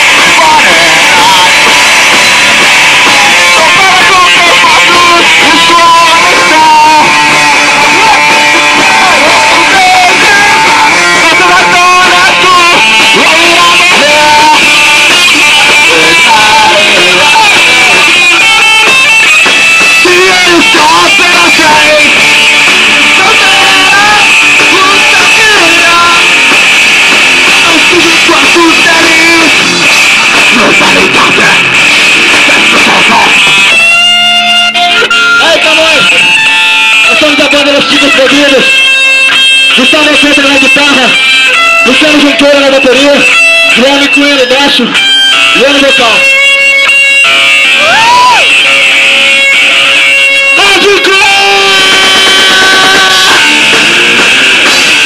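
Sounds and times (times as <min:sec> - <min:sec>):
shouted vocals into a microphone: 0:00.0 - 0:33.7, 0:47.7 - 0:55.0
drums: 0:00.0 - 0:55.0
electric guitar: 0:00.0 - 0:55.0.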